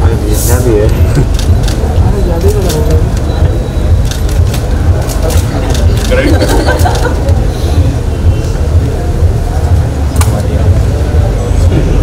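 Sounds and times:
faint voices: 0.0s - 12.0s
low rumble: 0.0s - 12.0s
sharp click: 10.2s - 10.5s.

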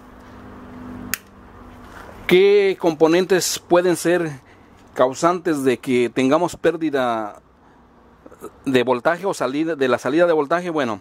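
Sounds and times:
sharp click: 1.1s - 1.4s.

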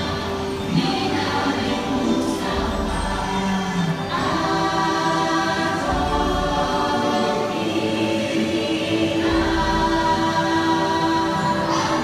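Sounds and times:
choir singing held notes: 0.0s - 12.0s.

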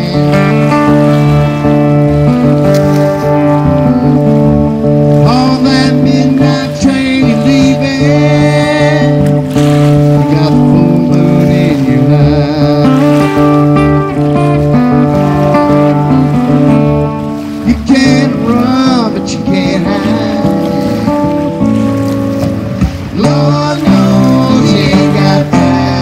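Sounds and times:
fiddle melody: 0.0s - 26.0s
strummed acoustic guitar: 0.0s - 26.0s.

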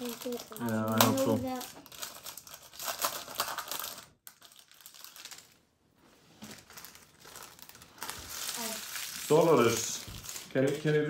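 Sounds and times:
foil wrapper crinkling: 0.0s - 5.6s, 6.4s - 11.0s.

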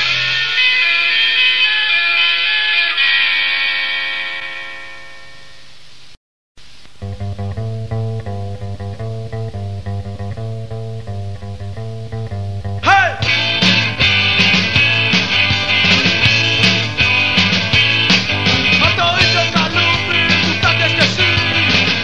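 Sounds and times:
electric guitar and bass riff: 0.0s - 3.4s, 6.9s - 22.0s
punk rock chord ringing: 0.0s - 5.6s, 7.0s - 22.0s.

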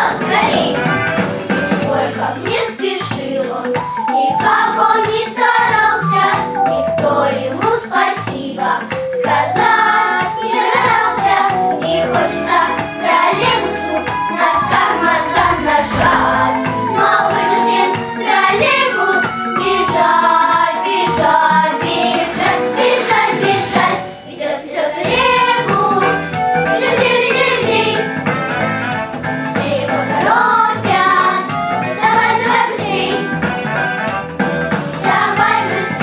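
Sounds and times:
instrumental accompaniment with beat: 0.0s - 36.0s
girls singing together: 9.5s - 28.0s, 29.6s - 31.4s.

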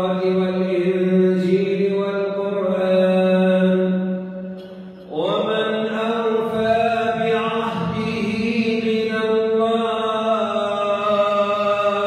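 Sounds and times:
man reciting melodically: 0.0s - 4.2s, 5.0s - 12.0s.

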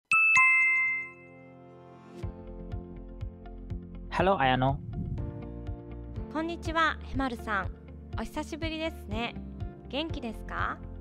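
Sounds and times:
two-note chime: 0.1s - 1.6s.

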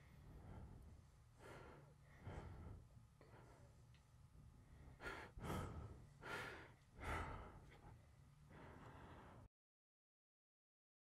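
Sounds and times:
faint low hum: 0.0s - 9.5s.

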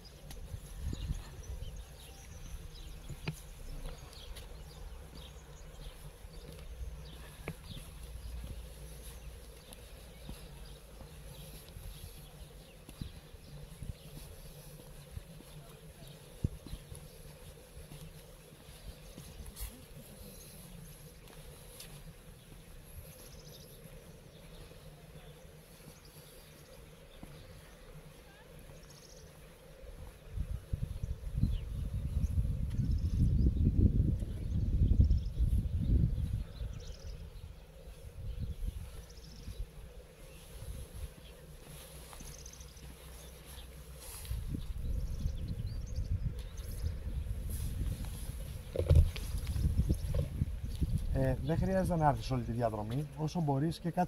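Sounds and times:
wind gusting on microphone: 0.0s - 9.2s, 30.0s - 41.2s, 44.0s - 52.4s.

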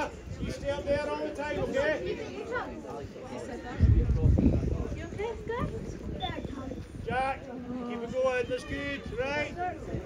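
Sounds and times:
faint voices chattering: 0.0s - 10.0s.

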